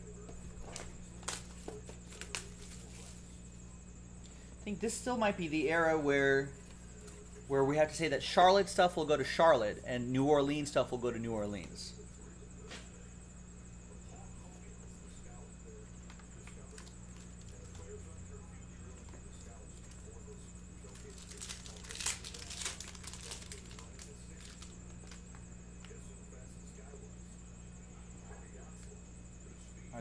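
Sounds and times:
steady low hum: 0:00.0 - 0:30.0
plastic wrap tearing and crinkling: 0:00.7 - 0:03.2, 0:20.8 - 0:25.4.

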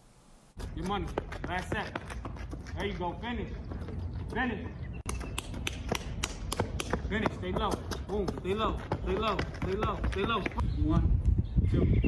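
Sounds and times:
running footsteps on pavement: 0:00.6 - 0:10.7.

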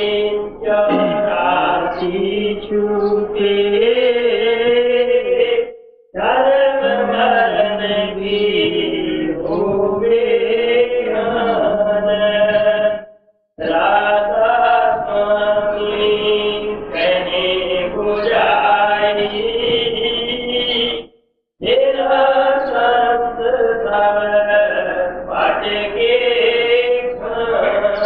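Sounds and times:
devotional chant singing: 0:00.0 - 0:28.0.

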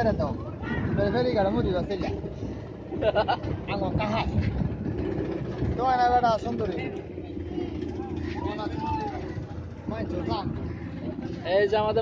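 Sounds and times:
steady low drone: 0:00.3 - 0:12.0.

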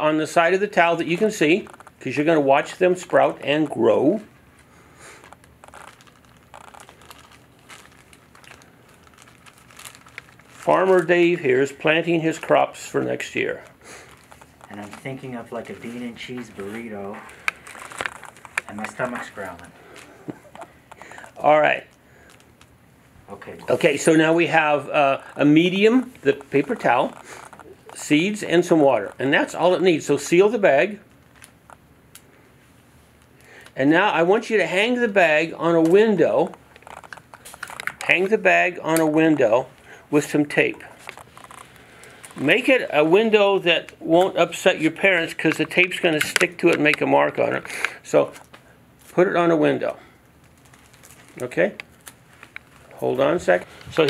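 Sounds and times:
plastic bag crinkling: 0:00.8 - 0:30.3, 0:30.9 - 0:32.3, 0:34.7 - 0:40.0, 0:40.8 - 0:48.7, 0:50.2 - 0:54.0.

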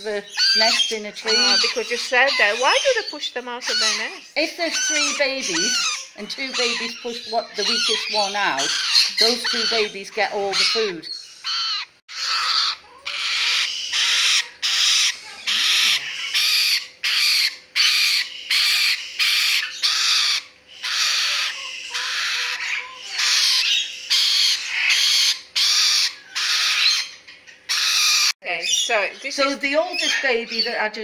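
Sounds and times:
lorikeet calling: 0:00.0 - 0:31.0.

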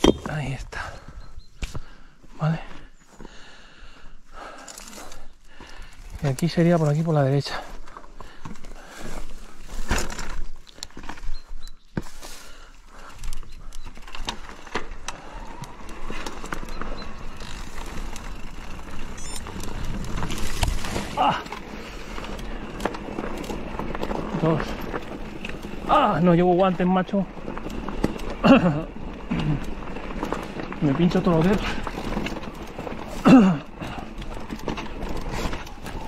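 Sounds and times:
tyres rolling on stones and gravel: 0:04.5 - 0:36.0
bike rattling over rocks: 0:04.6 - 0:12.3, 0:12.9 - 0:36.0.

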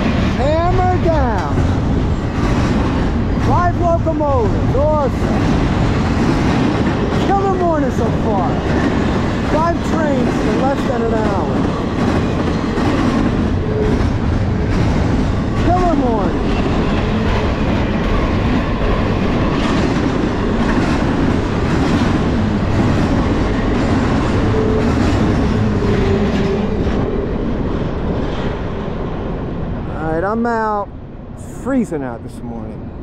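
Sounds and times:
freight train wheels rumbling on rail: 0:00.0 - 0:31.3.

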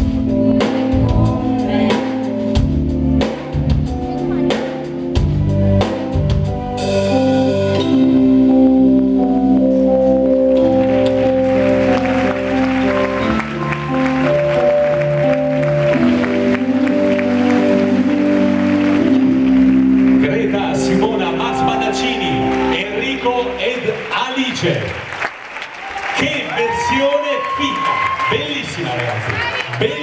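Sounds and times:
sustained organ chords: 0:00.0 - 0:25.2.

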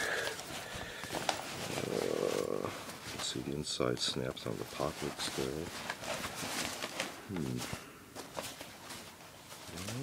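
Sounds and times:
fabric rustling: 0:00.0 - 0:10.0.

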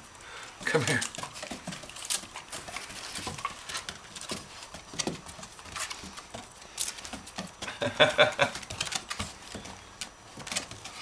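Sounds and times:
puppy claws on wooden floor: 0:00.6 - 0:11.0.

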